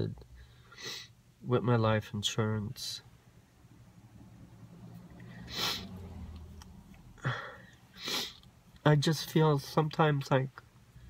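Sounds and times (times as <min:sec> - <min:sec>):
woman sniffling: 0:05.4 - 0:06.0, 0:07.2 - 0:08.4.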